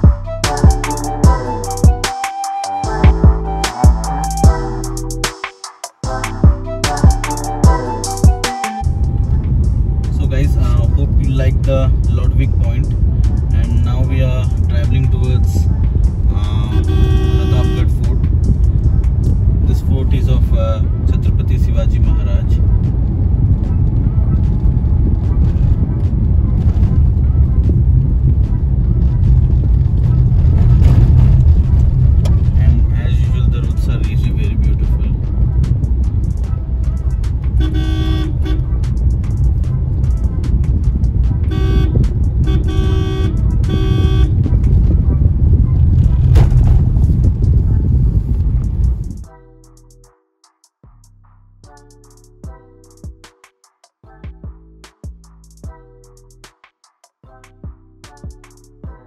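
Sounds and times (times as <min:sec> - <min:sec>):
car engine and road rumble: 0:06.1 - 0:50.0
car horn toots: 0:16.4 - 0:18.1, 0:37.4 - 0:39.1, 0:41.4 - 0:44.5.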